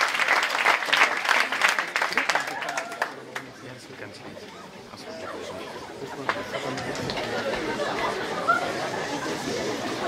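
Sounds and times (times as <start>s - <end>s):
audience chatter: 0.0s - 10.0s.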